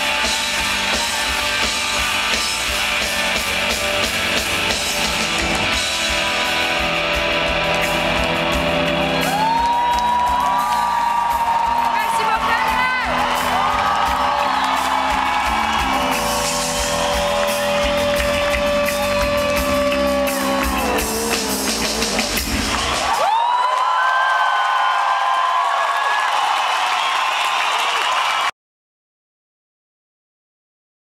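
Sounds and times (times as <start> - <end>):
live rock band playing: 0.0 - 23.3.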